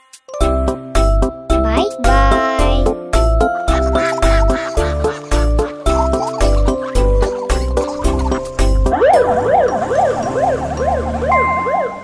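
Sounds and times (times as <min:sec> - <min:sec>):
ambulance siren yelping: 0:07.1 - 0:12.0.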